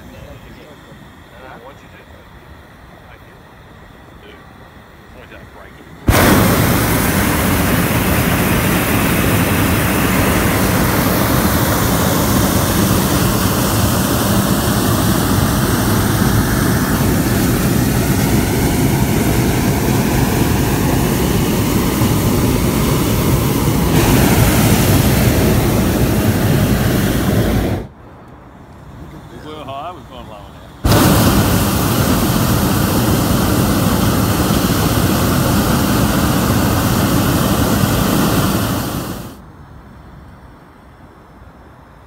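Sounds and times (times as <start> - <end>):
propane burner roaring: 3.0 - 28.0, 29.0 - 39.4.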